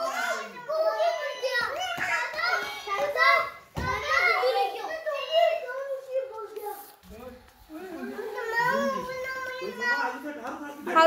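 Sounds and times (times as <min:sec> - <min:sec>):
children chattering and squealing: 0:00.0 - 0:07.1, 0:07.7 - 0:10.4.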